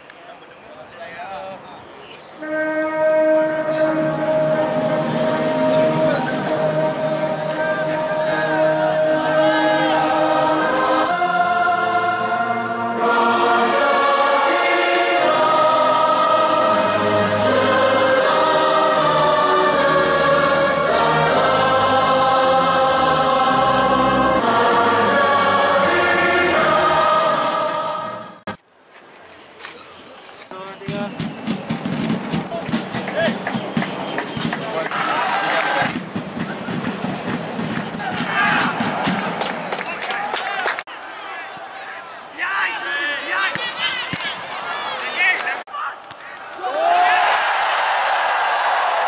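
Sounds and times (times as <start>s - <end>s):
noisy crowd ambience: 0.0s - 21.0s, 26.8s - 47.2s
choir singing with instruments: 2.5s - 28.6s.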